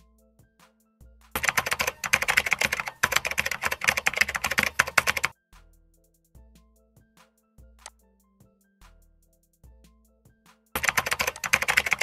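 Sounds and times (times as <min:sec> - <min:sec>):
soft background music: 0:00.0 - 0:12.0
rapid typing on keyboard: 0:01.4 - 0:05.3, 0:10.8 - 0:12.0.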